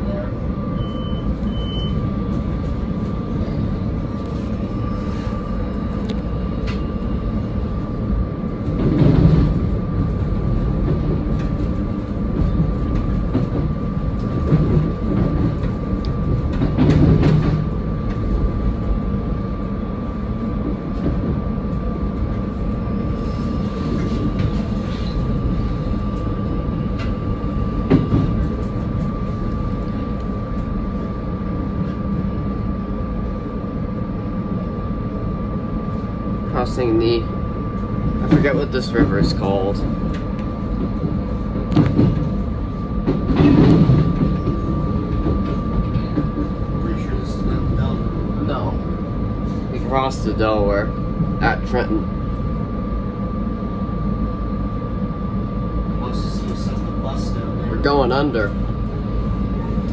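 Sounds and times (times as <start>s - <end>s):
train rattling: 0.0s - 59.9s
wheels rumbling on rail: 0.0s - 59.9s.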